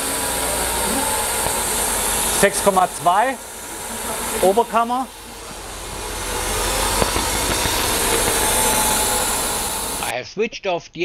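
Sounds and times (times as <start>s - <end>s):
car engine idling: 0.0s - 10.1s.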